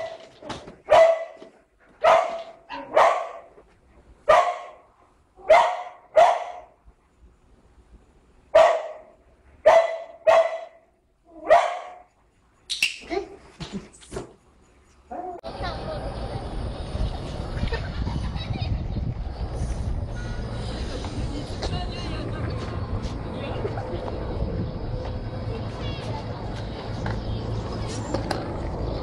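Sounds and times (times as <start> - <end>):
dog barking: 0.9 - 3.5, 4.3 - 4.8, 5.4 - 6.8, 8.6 - 10.8, 11.4 - 12.1.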